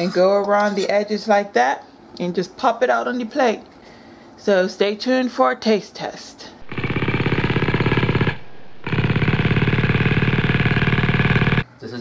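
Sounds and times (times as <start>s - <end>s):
loud rapid rattling buzz: 6.6s - 11.6s.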